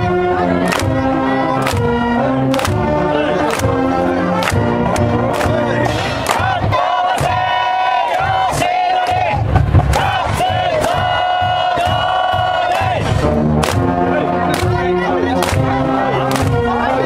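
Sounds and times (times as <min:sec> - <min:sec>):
crowd chanting: 0:00.0 - 0:17.0
steady drum beat: 0:00.0 - 0:17.0.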